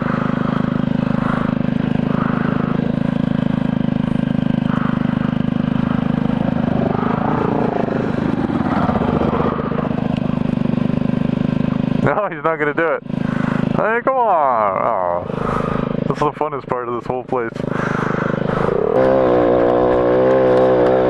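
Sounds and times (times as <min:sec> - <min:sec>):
dirt bike engine revving: 0:00.0 - 0:21.0
small motorbike engine idling: 0:00.0 - 0:21.0.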